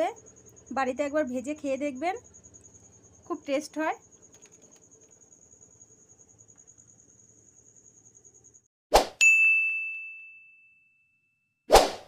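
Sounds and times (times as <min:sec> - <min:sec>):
faint pulsed high chirping: 0:00.0 - 0:08.7
bright bell ding: 0:09.2 - 0:11.5.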